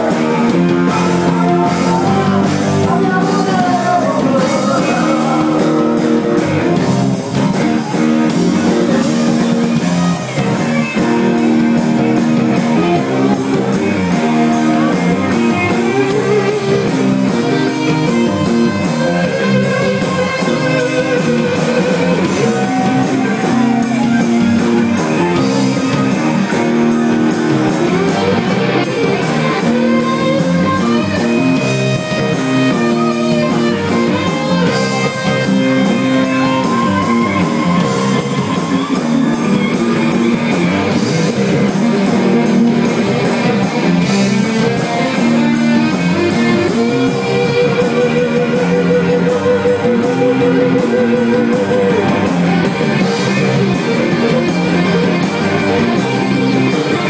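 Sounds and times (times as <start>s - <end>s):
drum kit: 0.0s - 57.0s
electric bass: 0.0s - 57.0s
electric guitar: 0.0s - 57.0s.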